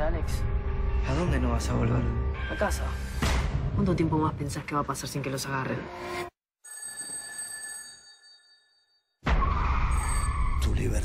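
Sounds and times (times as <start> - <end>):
bell-like ringing tone: 6.6 - 9.2.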